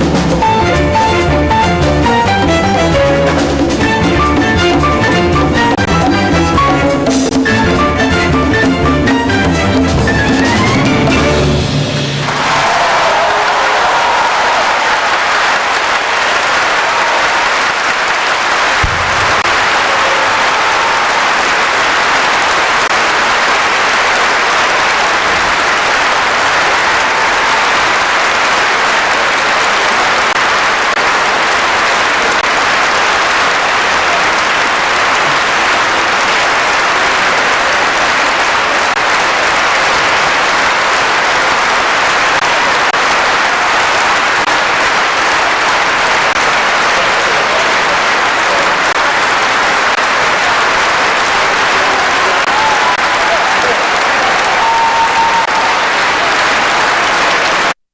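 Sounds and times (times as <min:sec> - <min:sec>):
audience applauding: 0:00.0 - 0:57.8.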